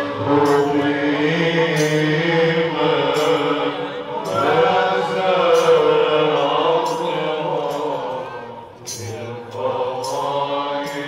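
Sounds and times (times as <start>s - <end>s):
lead voice singing into microphone: 0.0s - 11.0s
male voices chanting: 0.0s - 11.0s.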